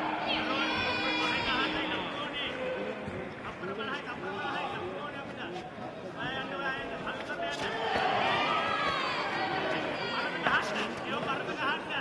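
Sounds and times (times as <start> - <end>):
arena crowd noise: 0.0 - 12.0.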